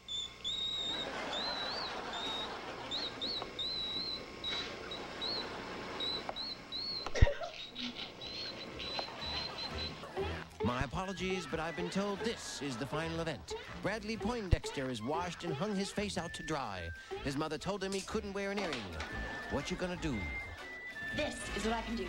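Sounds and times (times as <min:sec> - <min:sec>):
thin high warbling ear whistle: 0:00.0 - 0:07.4, 0:14.2 - 0:17.3, 0:18.8 - 0:22.0
steady background noise: 0:00.0 - 0:22.0.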